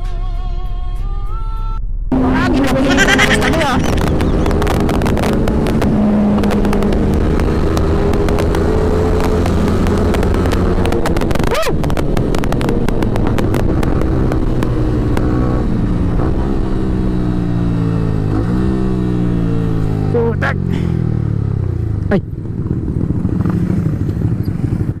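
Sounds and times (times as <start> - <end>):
wind noise: 0.0 - 25.0
motorcycle engine slowing: 1.8 - 25.0.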